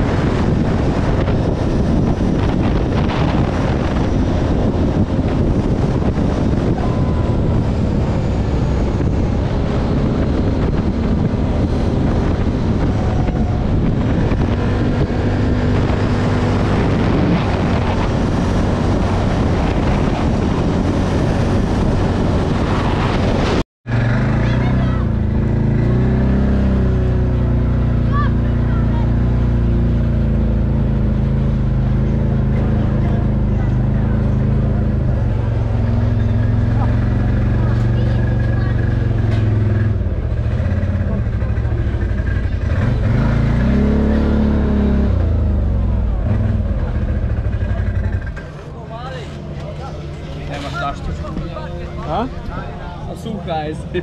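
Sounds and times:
wind rush: 0.0 - 48.4
quad bike engine: 0.0 - 54.0.

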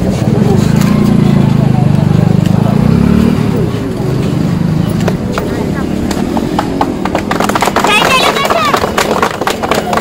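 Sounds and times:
crowd chatter: 0.0 - 10.0
vehicle engine running: 0.0 - 10.0
sharp cracks: 6.0 - 10.0.

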